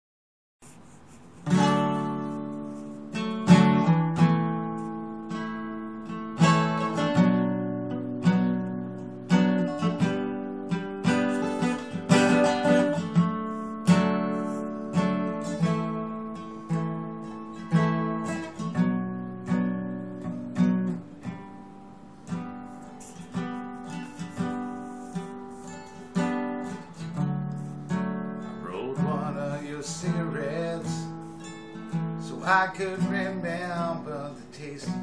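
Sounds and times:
acoustic guitar strummed: 0.8 - 35.0.

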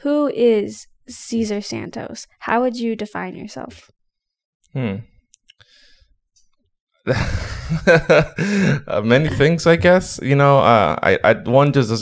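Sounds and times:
man humming hmm: 4.8 - 5.0, 7.1 - 9.6
soft breath: 5.6 - 6.2, 8.4 - 8.8.

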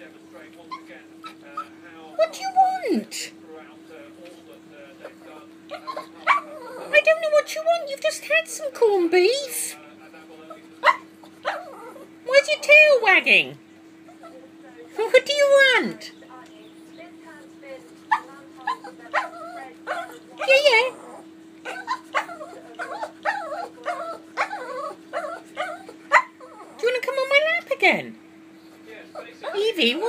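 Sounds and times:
small dog barking: 5.7 - 7.0, 10.8 - 12.1, 18.0 - 26.8, 29.2 - 30.0.

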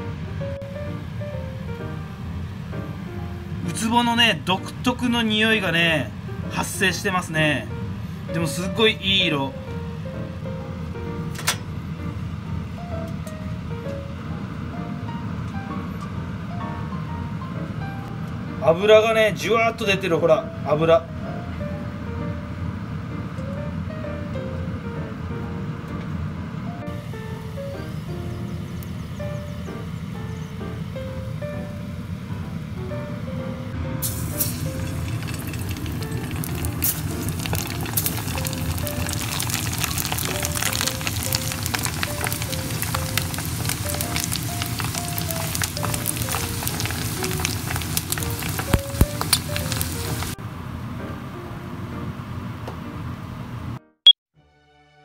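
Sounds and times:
background music: 0.0 - 50.4
fish deep-frying in hot oil: 34.0 - 50.4.

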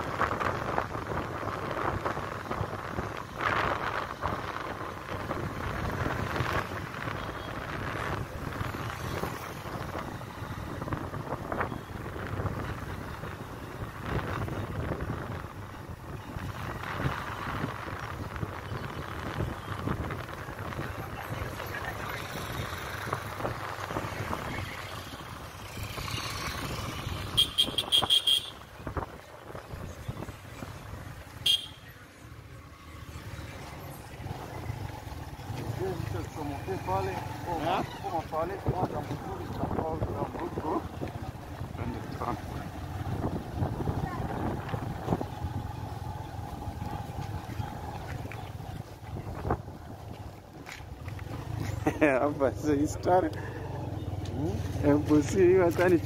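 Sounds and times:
motorcycle engine riding: 0.0 - 56.0
road and wind noise: 0.0 - 56.0.

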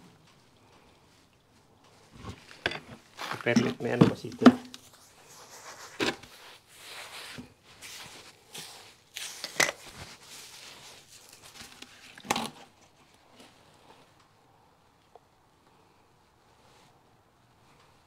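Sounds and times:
hands scraping soil on concrete: 1.3 - 11.5.

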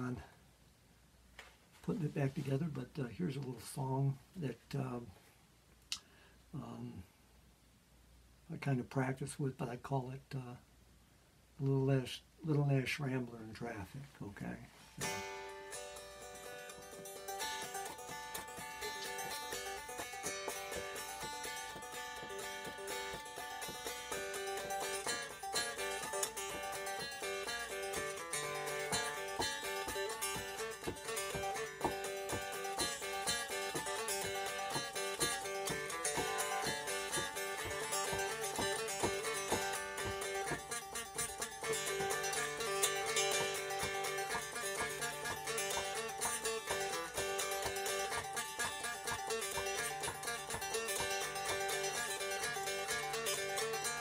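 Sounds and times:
electric banjo picked notes: 14.7 - 54.0.

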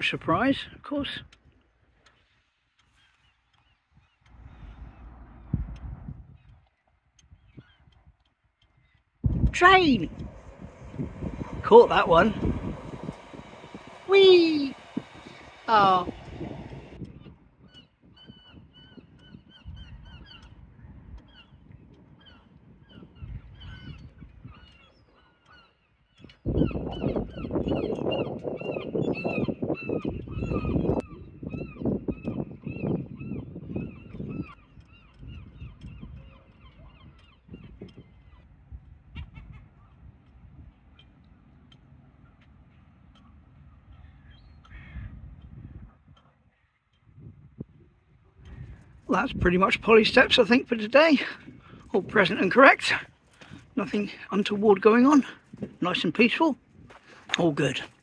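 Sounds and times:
birds calling: 2.1 - 45.8
low rushing noise: 9.2 - 17.6.

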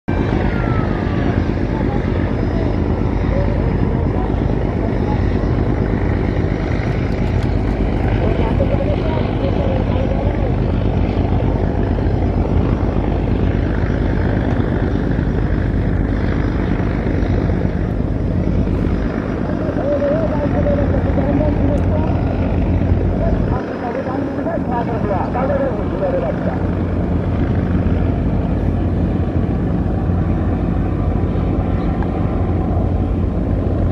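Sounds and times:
bow wave wash: 0.1 - 33.9
voices: 0.1 - 33.9.

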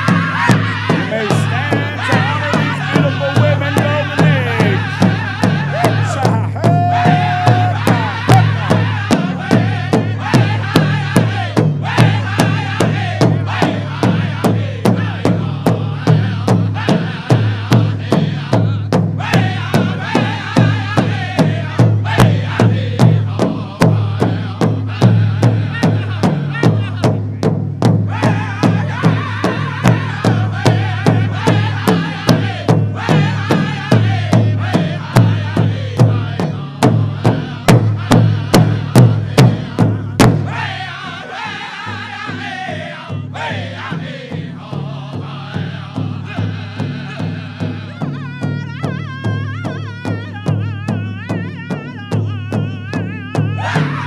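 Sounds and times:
big drum beating steadily: 0.0 - 54.0
men chanting together: 0.0 - 54.0.

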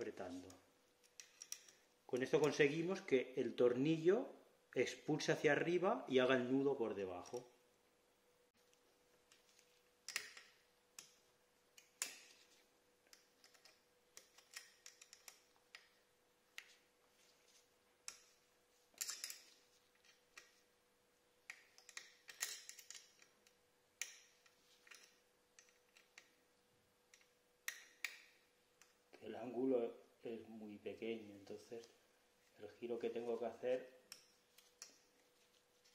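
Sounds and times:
small metal parts clicking and scraping: 1.0 - 1.9, 11.8 - 16.0, 18.0 - 20.6, 21.5 - 26.3.

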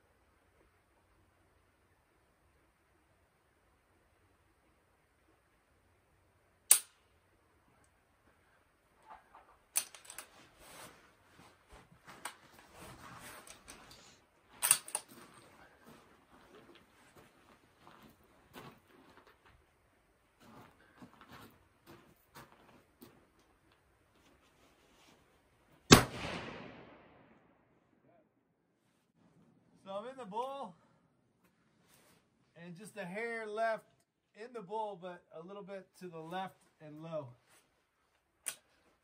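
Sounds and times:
faint sharp cracks: 6.7 - 7.1, 38.4 - 38.9
small clicks and knocks: 9.0 - 10.3
rifle shot with echo: 25.9 - 27.6.

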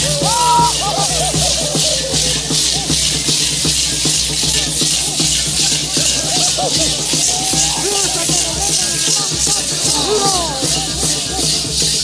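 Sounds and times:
gourd maracas shaking: 0.0 - 12.0
music: 0.0 - 12.0.

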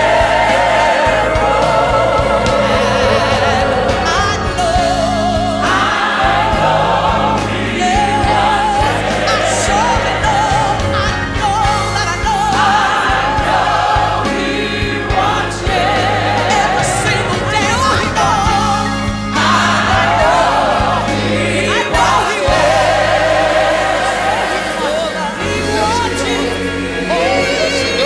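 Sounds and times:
band playing: 0.0 - 28.0
choir singing: 0.0 - 28.0
person singing with vibrato: 14.3 - 28.0.

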